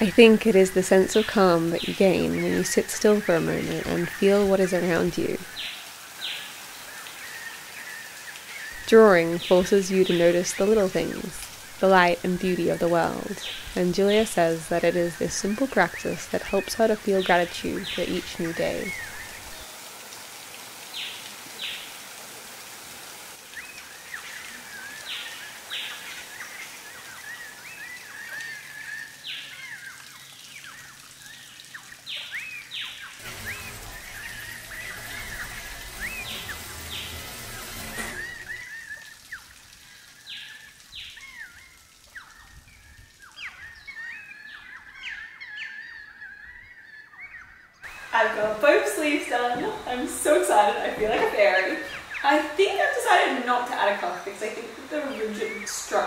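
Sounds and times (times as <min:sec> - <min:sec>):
birds chirping: 0:00.0 - 0:20.0, 0:20.6 - 0:56.0
rushing noise: 0:33.2 - 0:38.6.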